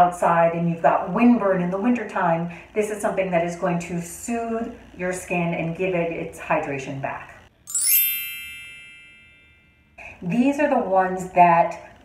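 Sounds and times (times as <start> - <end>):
bright bell-like chime: 7.7 - 9.9.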